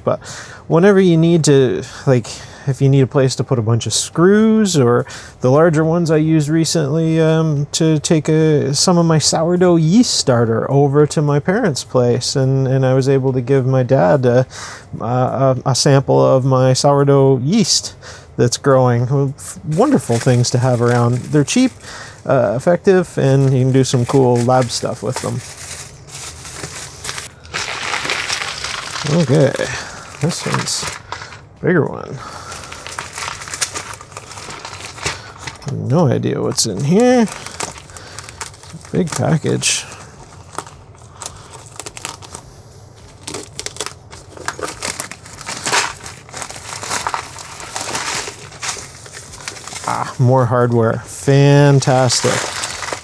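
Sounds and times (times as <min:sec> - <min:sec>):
plastic packaging crinkling: 0:19.5 - 0:31.4, 0:32.0 - 0:50.3, 0:51.4 - 0:53.0.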